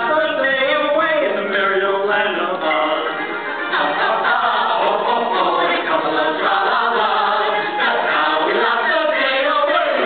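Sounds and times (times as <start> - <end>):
group singing a show tune: 0.0 - 10.0.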